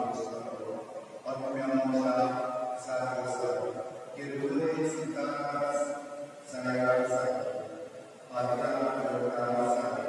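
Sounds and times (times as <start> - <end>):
man chanting into a microphone: 0.0 - 7.7, 8.3 - 10.0.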